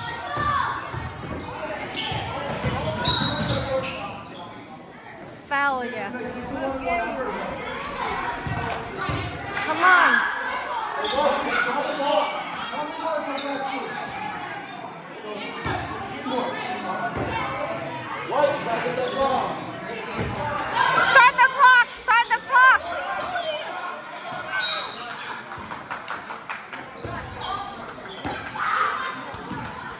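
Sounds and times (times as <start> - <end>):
voices echoing: 0.0 - 29.9
loud shout: 20.7 - 25.2, 28.3 - 29.4.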